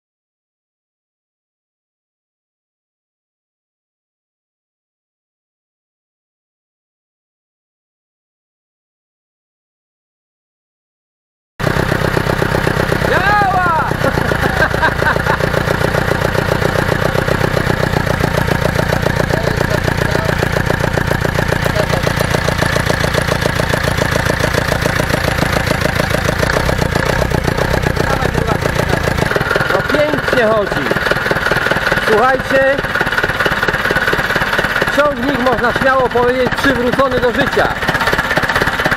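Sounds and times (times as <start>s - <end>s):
tractor diesel engine idling: 11.6s - 38.9s.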